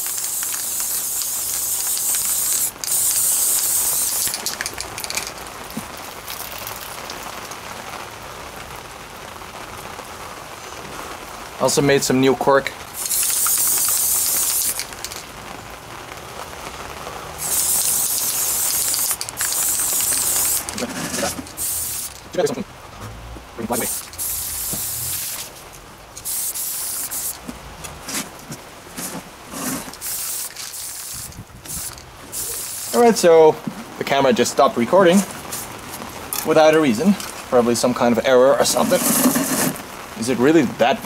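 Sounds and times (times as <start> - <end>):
spray paint can hissing: 0.0 - 5.4, 6.3 - 7.2, 13.0 - 15.2, 17.4 - 22.2, 23.7 - 25.5, 26.2 - 27.5, 28.9 - 33.2, 35.5 - 35.7, 38.7 - 39.8.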